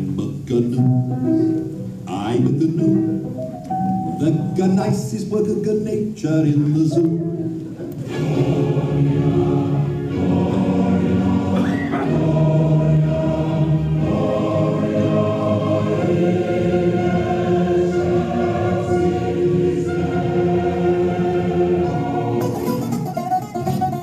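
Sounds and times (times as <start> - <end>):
choir singing chords: 7.4 - 24.0.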